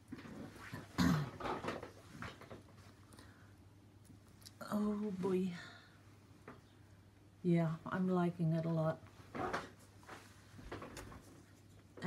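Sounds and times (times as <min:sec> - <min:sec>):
soft rustles: 0:08.7 - 0:12.0.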